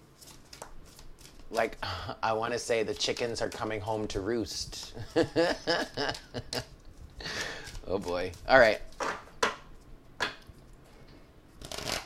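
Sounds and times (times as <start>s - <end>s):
cards being shuffled: 0.0s - 1.8s, 2.6s - 5.0s, 6.0s - 9.2s, 11.6s - 12.0s.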